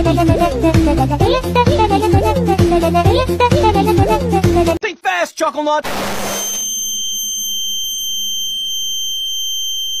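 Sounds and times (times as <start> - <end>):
high-pitched ringing tone: 6.2 - 10.0.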